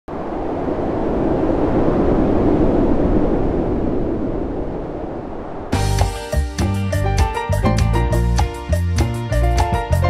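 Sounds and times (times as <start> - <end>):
low rushing noise: 0.1 - 6.0.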